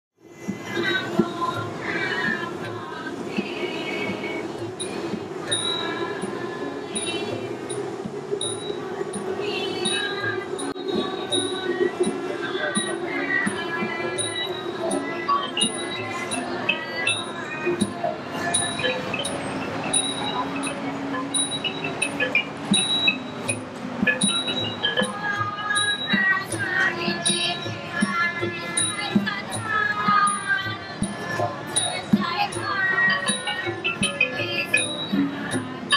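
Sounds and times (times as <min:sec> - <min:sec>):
tuned percussion notes: 0:00.4 - 0:35.9
small metal percussion ringing: 0:04.8 - 0:35.9.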